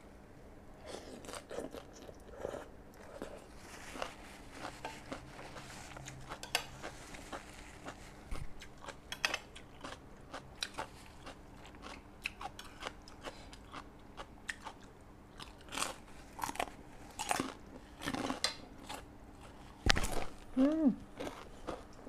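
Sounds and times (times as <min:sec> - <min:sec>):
person chewing and crunching food: 0:00.8 - 0:22.0.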